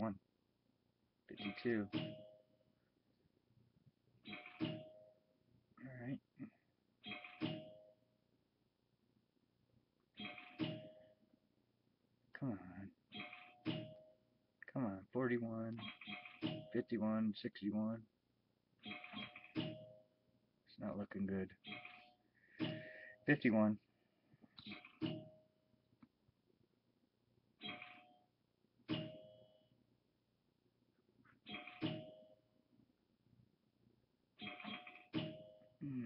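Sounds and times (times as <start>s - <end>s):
man speaking: 0.0s - 0.2s, 1.3s - 2.0s, 5.8s - 6.5s, 12.4s - 13.0s, 14.6s - 15.8s, 16.7s - 18.0s, 20.7s - 21.6s, 22.8s - 23.8s.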